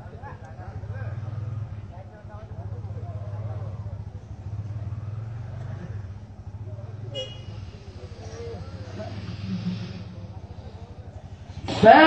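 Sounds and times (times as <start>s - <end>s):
pulsing motor drone: 7.6s - 12.0s.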